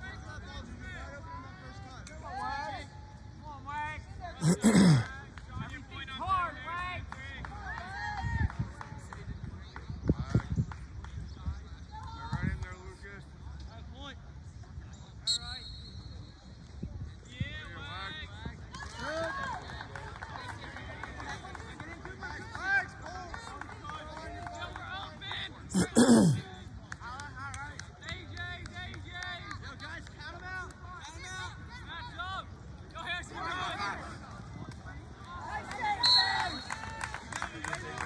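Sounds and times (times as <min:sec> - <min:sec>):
referee's whistle: 0:15.2 - 0:16.5, 0:36.0 - 0:36.8.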